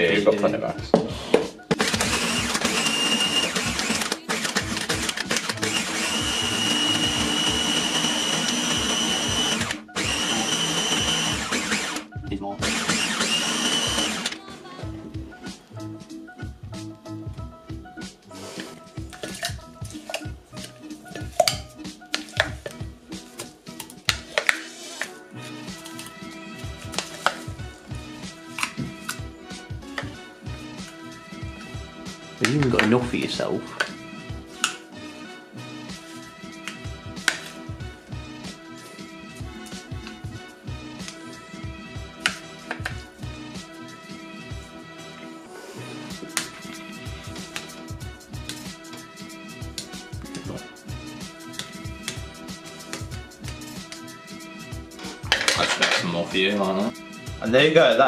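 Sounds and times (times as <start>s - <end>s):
background music: 0.0s - 58.0s
blender crushing ice: 1.7s - 14.5s, 32.4s - 33.0s, 55.2s - 56.2s.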